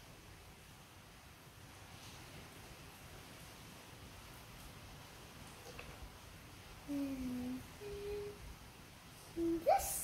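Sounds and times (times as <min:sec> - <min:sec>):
girl humming: 0:06.9 - 0:08.4.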